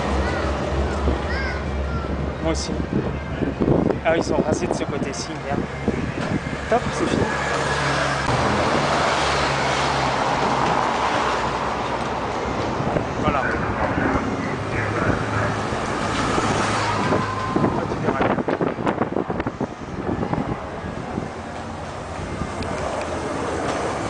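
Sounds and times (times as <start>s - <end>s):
road noise: 0.0s - 24.0s
people talking: 6.7s - 7.4s, 13.2s - 15.9s.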